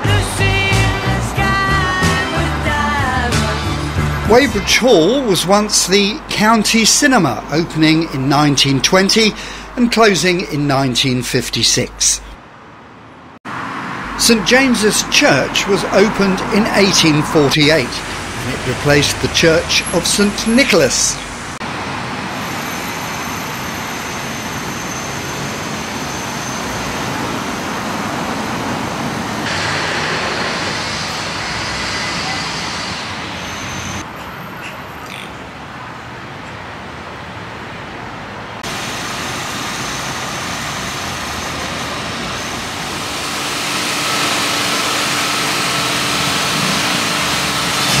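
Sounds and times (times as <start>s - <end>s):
road traffic noise: 0.0s - 48.0s.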